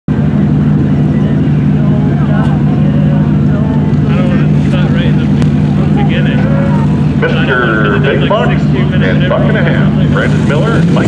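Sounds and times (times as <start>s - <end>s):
vehicle engines idling: 0.1s - 11.0s.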